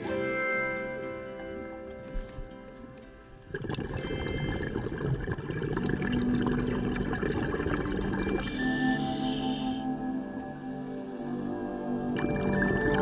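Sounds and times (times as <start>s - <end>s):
soft background music: 0.0s - 13.0s
underwater bubbling: 3.4s - 9.1s, 12.2s - 13.0s
regulator hiss: 8.4s - 9.9s.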